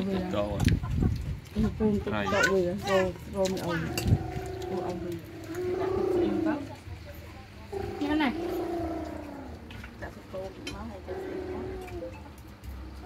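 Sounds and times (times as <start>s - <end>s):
people talking: 1.5s - 12.3s.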